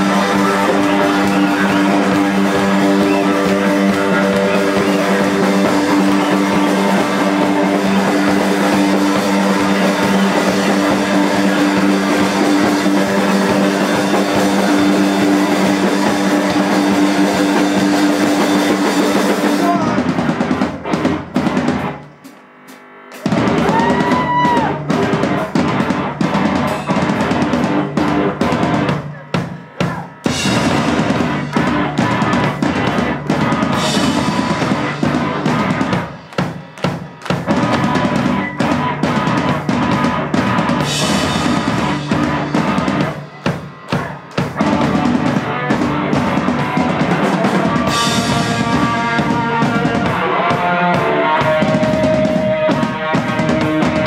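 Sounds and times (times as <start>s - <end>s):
bass guitar: 0.0s - 54.0s
distorted electric guitar: 0.0s - 54.0s
drum kit: 0.0s - 54.0s.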